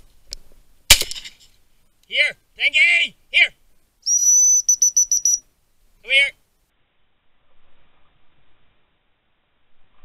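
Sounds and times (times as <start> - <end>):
high-pitched dog whistle: 4.0 - 5.4.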